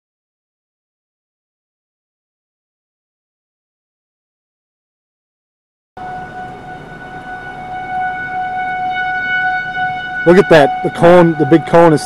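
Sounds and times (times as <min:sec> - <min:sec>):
tornado warning siren: 0:06.0 - 0:12.0.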